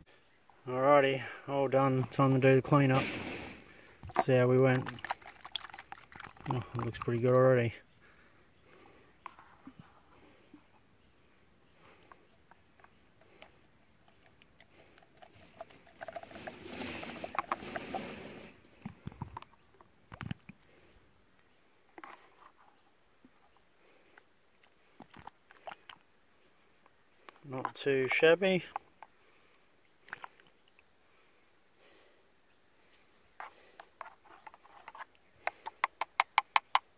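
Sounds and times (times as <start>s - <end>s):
snuffer bottle slurping water: 2.9s - 7.3s, 13.2s - 19.5s.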